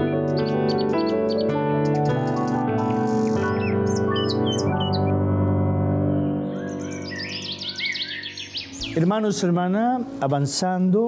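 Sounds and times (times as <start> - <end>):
birds chirping: 0.0 - 5.2, 6.4 - 10.4
soft sustained music: 0.0 - 11.0.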